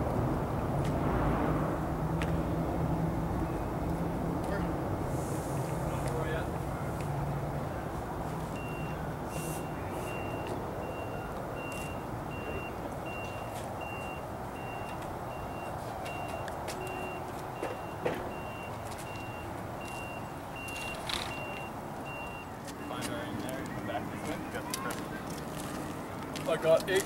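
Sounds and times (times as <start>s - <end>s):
vehicle reversing alarm beeping: 8.5s - 23.1s.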